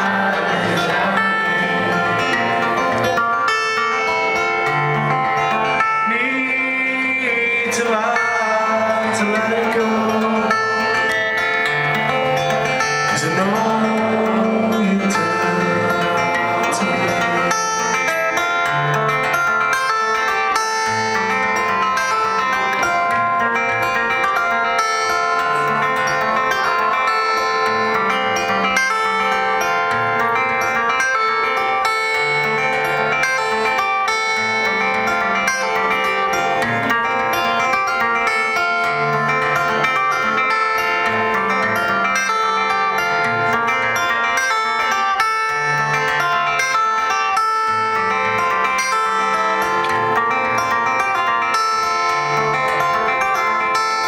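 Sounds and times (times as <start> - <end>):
acoustic guitar picked chords: 0.0 - 54.0.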